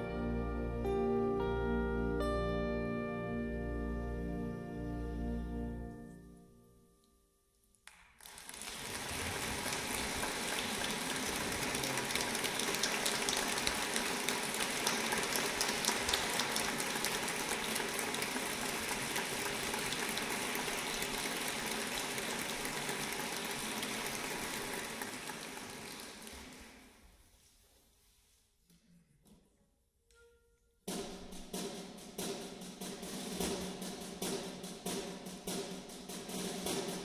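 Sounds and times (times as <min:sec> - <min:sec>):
audience applauding: 0:07.9 - 0:26.9.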